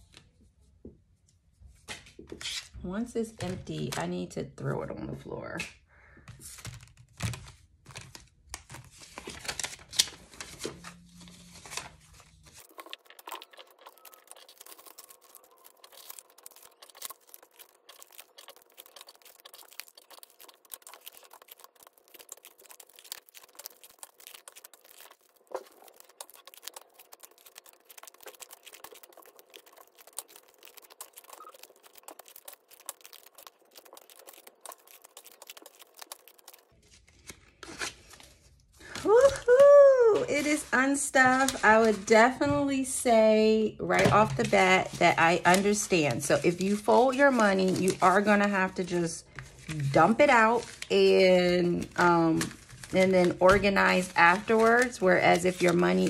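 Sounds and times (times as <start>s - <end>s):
paper money rustling: 6.4s - 39.6s, 40.2s - 42.3s, 44.0s - 56.0s.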